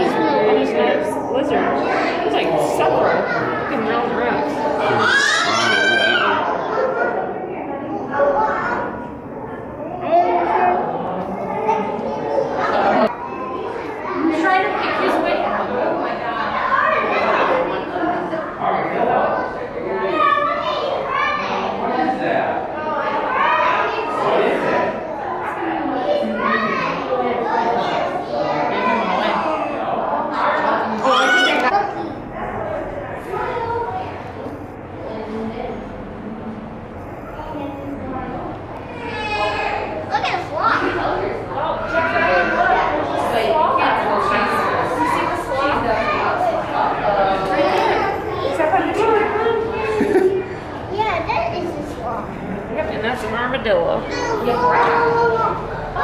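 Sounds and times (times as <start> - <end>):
children chattering: 0.0 - 56.0
other voices: 0.0 - 56.0.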